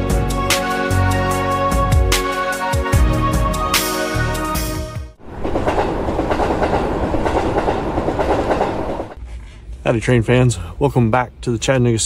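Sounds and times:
instrumental music: 0.0s - 5.2s
train running along rails: 5.2s - 9.2s.

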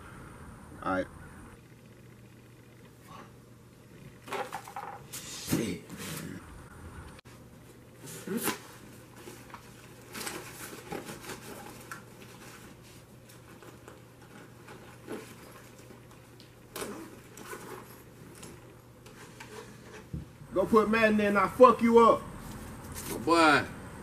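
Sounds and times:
low steady hum: 0.0s - 24.0s
handling rustles and light knocks: 7.3s - 20.4s.

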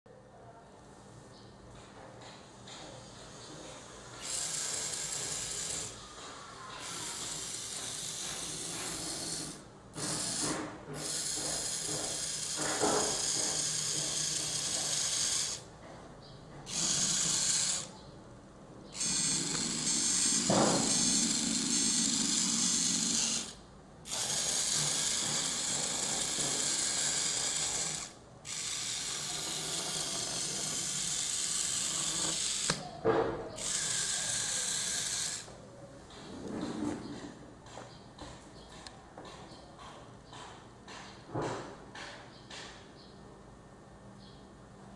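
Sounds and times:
servo motors whirring: 4.2s - 6.0s, 6.7s - 15.6s, 16.7s - 17.9s, 18.9s - 32.9s, 33.6s - 35.5s.

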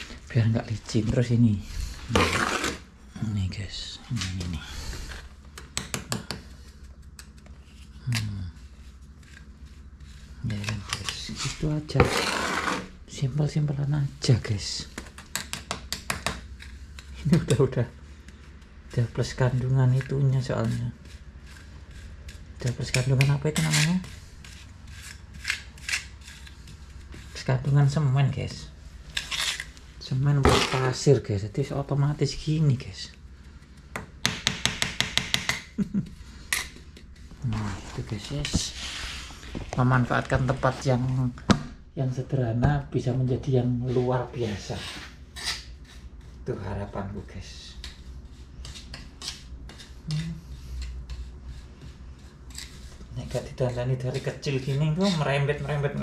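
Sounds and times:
tool packing mortar: 2.1s - 2.9s, 10.3s - 13.0s, 30.4s - 31.0s
trowel tapping on cement mix: 5.6s - 6.5s, 33.9s - 35.7s.

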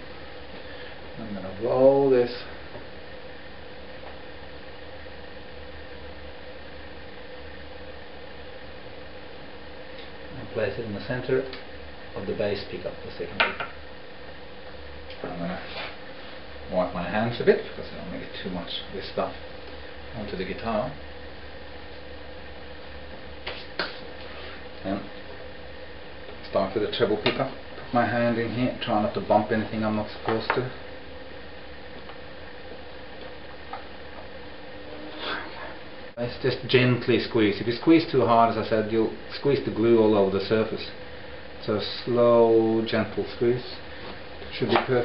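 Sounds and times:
faint hum: 0.0s - 45.0s
steady background hiss: 0.0s - 45.0s.

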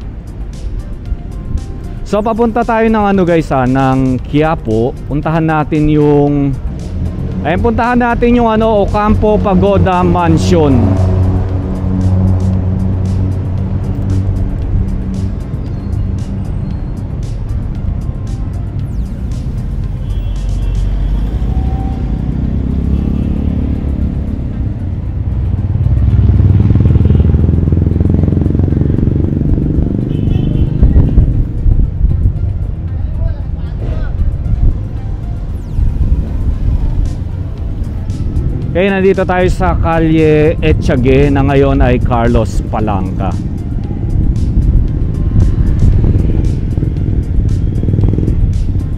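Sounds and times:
vehicles passing: 0.0s - 48.9s.

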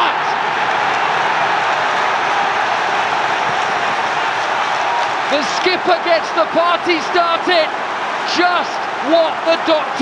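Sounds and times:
stadium crowd cheering: 0.0s - 10.0s.

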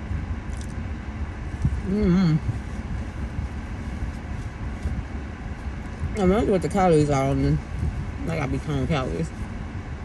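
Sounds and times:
car cabin rumble: 0.0s - 10.0s
person humming: 1.8s - 2.5s.

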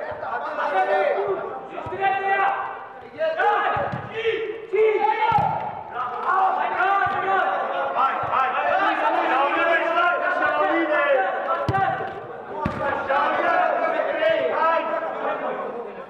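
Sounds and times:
players shouting: 0.0s - 15.8s
ball being kicked: 3.8s - 4.1s, 11.6s - 12.9s.

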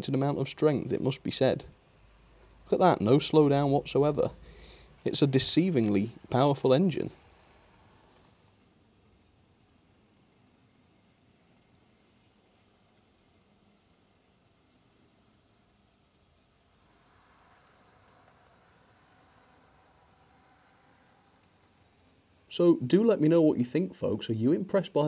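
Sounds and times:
model trains running on track: 0.0s - 25.0s.

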